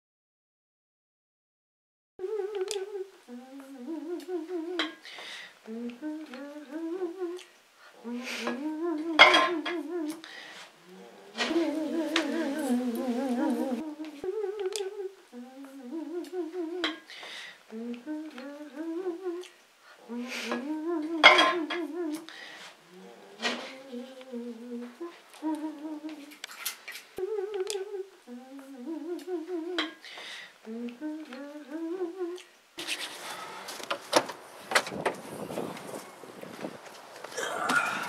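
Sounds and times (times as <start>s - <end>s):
person humming: 2.2s - 17.1s, 17.7s - 26.4s, 27.2s - 30.0s, 30.6s - 33.0s, 37.4s - 38.0s
dishes and utensils clinking: 9.2s - 9.8s, 21.2s - 21.6s.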